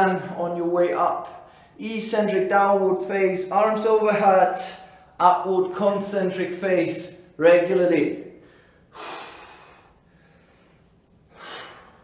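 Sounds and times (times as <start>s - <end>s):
man breathing sharply: 1.4s - 1.8s, 4.8s - 5.2s, 8.3s - 12.0s.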